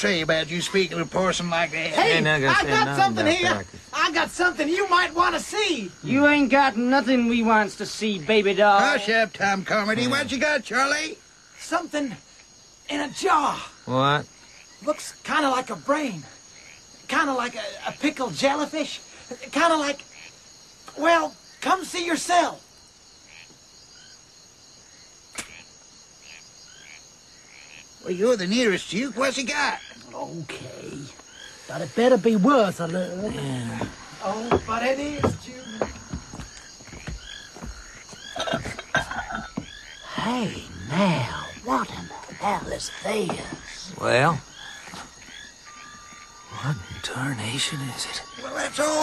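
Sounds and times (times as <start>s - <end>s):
man's voice: 0.0s - 5.2s
crickets chirring: 0.0s - 49.0s
sharp click: 25.3s - 25.6s.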